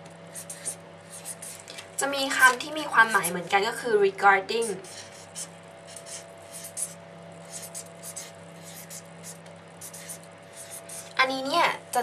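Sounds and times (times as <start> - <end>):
low electrical hum: 0.0 - 12.0
pen writing strokes: 0.3 - 1.6, 4.9 - 11.2.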